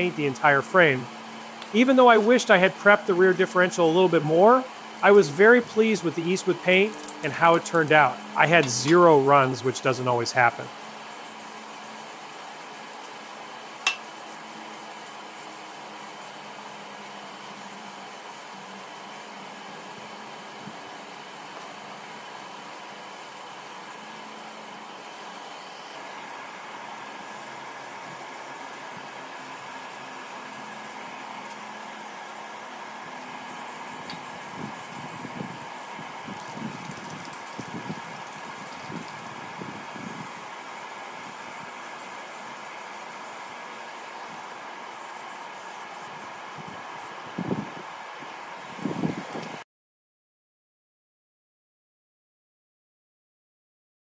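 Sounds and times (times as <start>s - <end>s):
mechanical hum and hiss: 0.0s - 49.6s.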